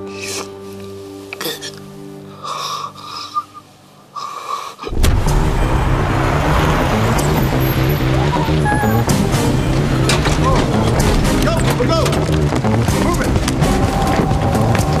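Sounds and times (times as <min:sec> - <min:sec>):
car engine: 0:04.9 - 0:13.7
dramatic music with pulsing bass: 0:04.9 - 0:15.0
tyres on wet street: 0:04.9 - 0:15.0
short tyre squeals: 0:07.4 - 0:09.3.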